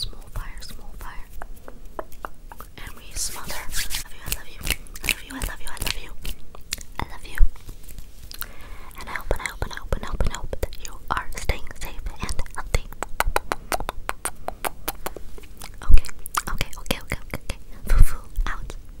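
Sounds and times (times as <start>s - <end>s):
person whispering: 0.0s - 1.4s, 2.5s - 6.3s, 7.0s - 7.5s, 8.9s - 13.0s, 15.7s - 18.8s
clicking mouth sounds: 1.3s - 3.0s, 4.2s - 7.5s, 8.3s - 8.5s, 9.1s - 17.6s.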